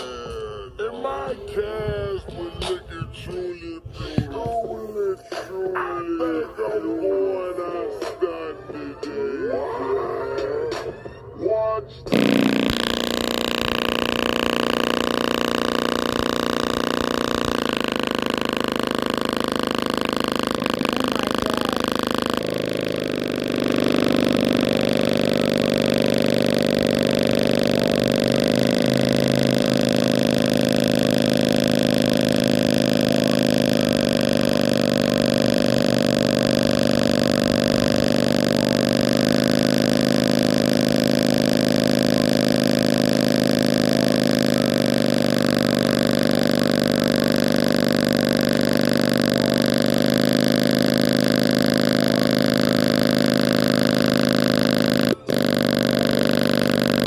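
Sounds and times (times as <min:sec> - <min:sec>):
loud bass tone from speaker: 0:11.1 - 0:57.0.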